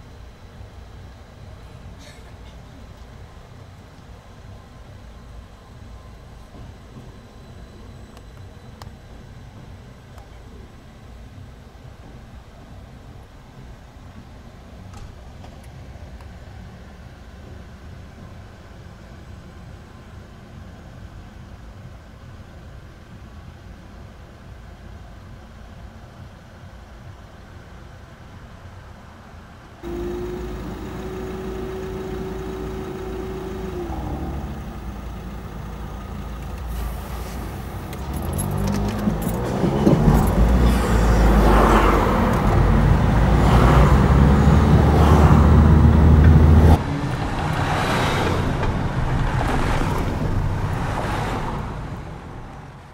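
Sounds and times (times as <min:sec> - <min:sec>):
car engines moving off: 0:29.8 - 0:52.9.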